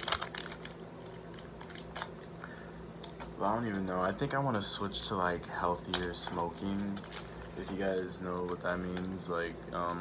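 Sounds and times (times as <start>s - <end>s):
plastic pouch crinkling: 0.0s - 3.9s, 5.3s - 10.0s.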